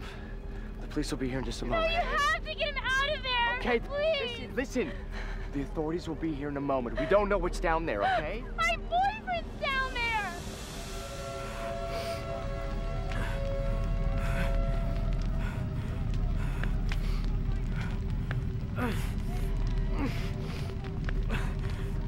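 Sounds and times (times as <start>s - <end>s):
dark orchestral score: 0.0s - 22.0s
low rumble: 0.0s - 22.0s.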